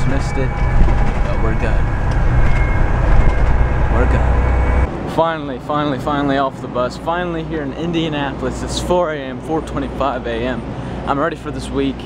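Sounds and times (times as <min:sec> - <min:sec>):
vehicle interior rumble: 0:00.0 - 0:04.9.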